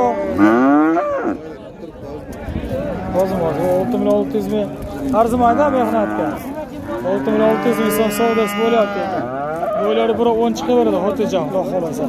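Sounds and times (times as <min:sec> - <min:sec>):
calf mooing: 0:07.0 - 0:10.0.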